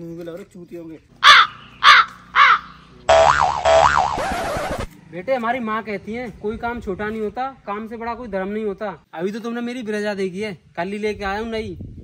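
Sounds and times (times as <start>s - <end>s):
crow cawing: 1.2s - 3.0s
rising and falling sound effect: 3.1s - 4.9s.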